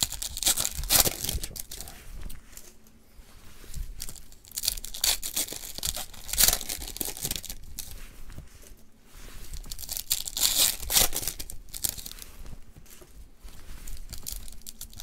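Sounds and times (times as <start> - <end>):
foil wrapper crinkling and tearing: 0.0 - 2.8, 3.8 - 7.9, 9.5 - 12.2, 13.8 - 15.0.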